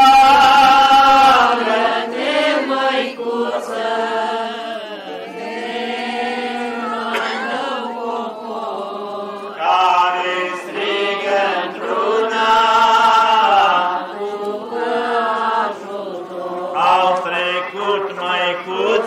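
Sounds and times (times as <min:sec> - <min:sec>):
voices chanting a hymn: 0:00.0 - 0:19.0.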